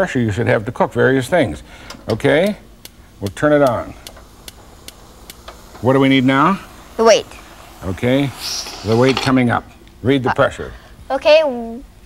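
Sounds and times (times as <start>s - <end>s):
gas stove igniter clicking: 1.6s - 10.0s.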